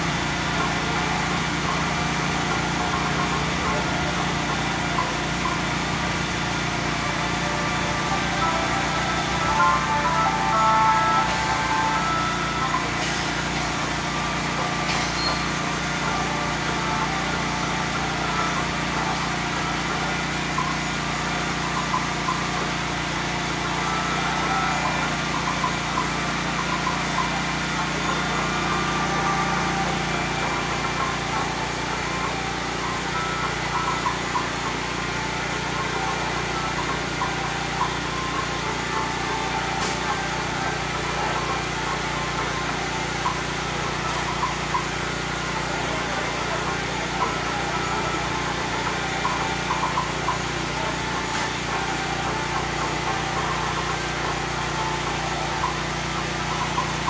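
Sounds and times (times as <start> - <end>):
engine-like hum: 0.0 - 57.0.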